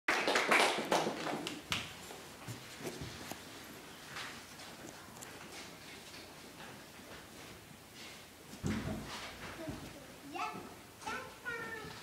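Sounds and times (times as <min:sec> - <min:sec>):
people clapping: 0:00.1 - 0:02.0.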